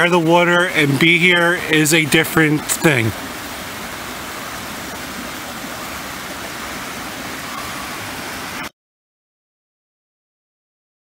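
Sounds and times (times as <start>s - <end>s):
water rushing over rocks: 0.0s - 8.7s.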